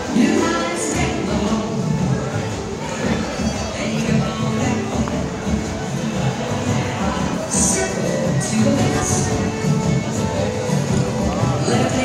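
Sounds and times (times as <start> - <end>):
dance band playing: 0.0 - 12.0.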